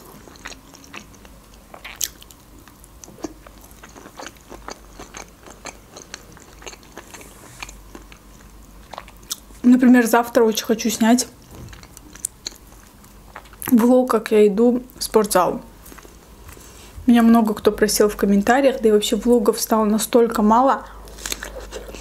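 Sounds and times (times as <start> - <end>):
close chewing with wet smacks: 0.2 - 9.5, 11.5 - 13.8.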